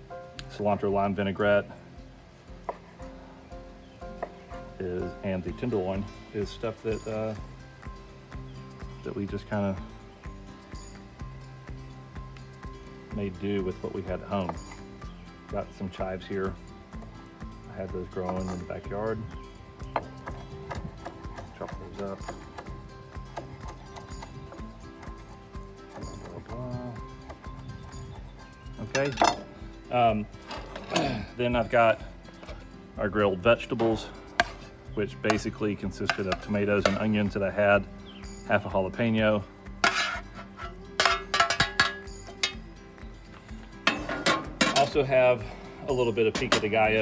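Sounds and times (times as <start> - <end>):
metal tongs clinking and scraping: 28.8 - 29.5, 39.8 - 42.6.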